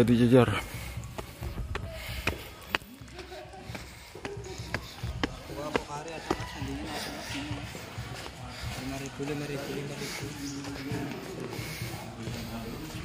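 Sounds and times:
footsteps on concrete: 0.5s - 13.0s
people talking: 1.8s - 13.0s.

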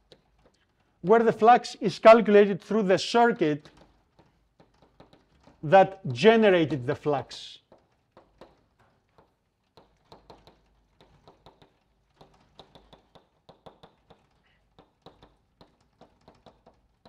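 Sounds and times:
chalk tapping on a blackboard: 0.0s - 0.8s, 3.6s - 5.6s, 7.6s - 17.0s.

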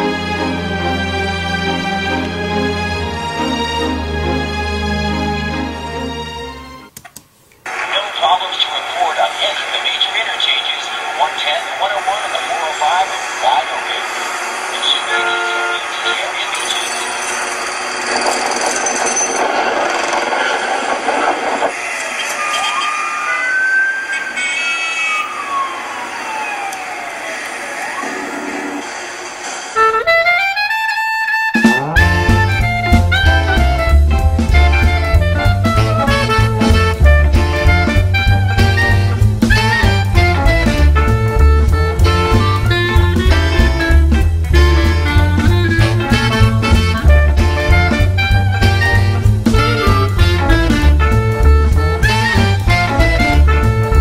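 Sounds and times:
indistinct voices: 7.7s - 17.1s
swing music with low beat: 29.9s - 54.0s.

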